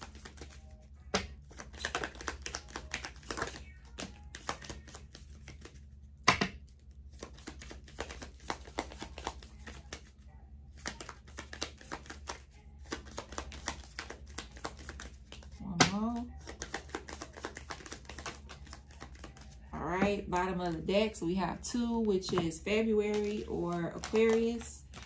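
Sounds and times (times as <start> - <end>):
paper cards being shuffled: 0.0 - 6.1, 6.7 - 21.1, 22.0 - 25.0.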